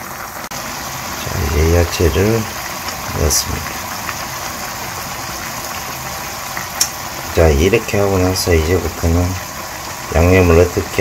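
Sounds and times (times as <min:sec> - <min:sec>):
food sizzling in a frying pan: 0:00.0 - 0:11.0.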